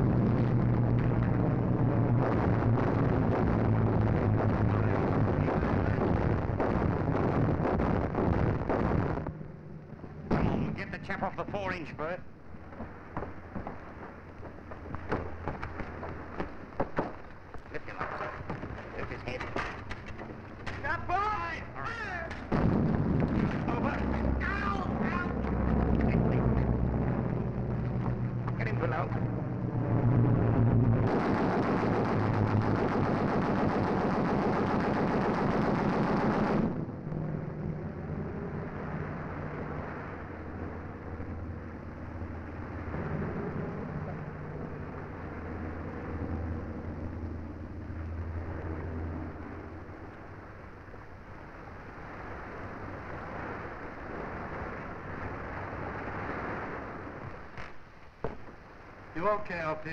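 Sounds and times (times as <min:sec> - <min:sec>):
steady low rumble: 0:00.0 - 0:59.9
anti-aircraft guns firing: 0:02.1 - 0:09.4, 0:10.2 - 0:12.0, 0:12.7 - 0:25.9, 0:31.0 - 0:36.8.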